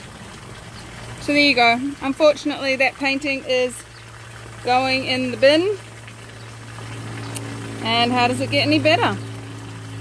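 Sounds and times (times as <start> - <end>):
water running from hose: 0.0 - 10.0.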